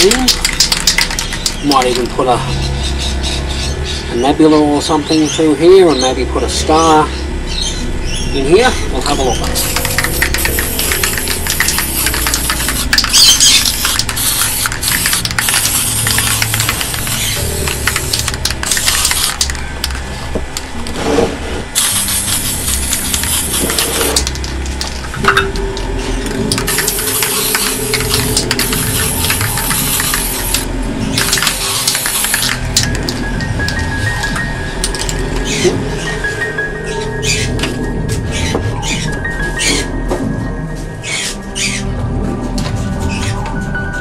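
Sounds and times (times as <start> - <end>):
spray-paint can hissing: 0.0 - 2.0, 9.4 - 20.0, 21.8 - 25.3, 26.2 - 33.8
background music: 0.0 - 44.0.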